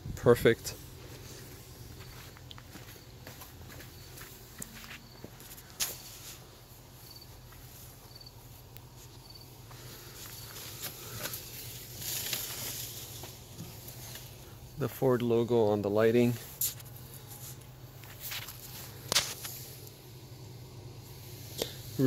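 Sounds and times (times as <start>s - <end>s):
footsteps and shuffling: 0.6s - 14.5s, 16.3s - 19.6s.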